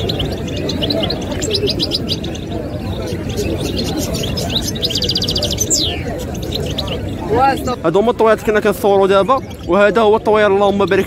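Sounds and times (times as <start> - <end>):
crowd murmur: 0.0 - 11.0
finch singing: 0.0 - 11.0.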